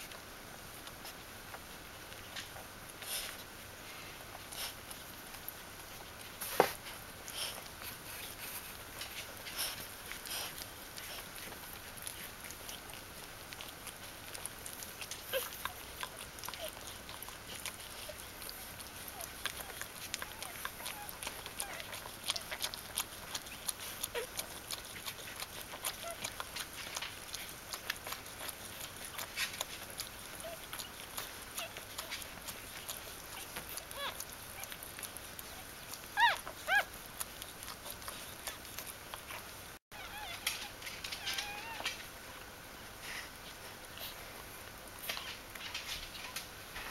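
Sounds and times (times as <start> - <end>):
puppies squeaking: 15.0 - 24.4, 28.4 - 38.9, 39.9 - 42.0.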